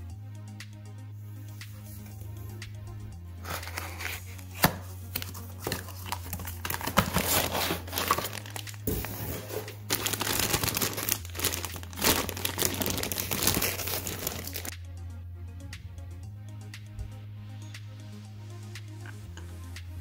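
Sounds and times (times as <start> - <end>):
plastic and cardboard snapping: 4.6 - 9.0
plastic bag crinkling: 5.6 - 14.7.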